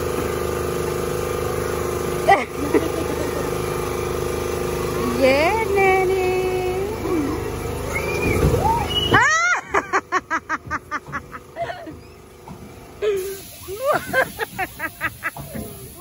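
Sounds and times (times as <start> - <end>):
high-pitched laughter: 9.1 - 12.0, 13.0 - 15.7.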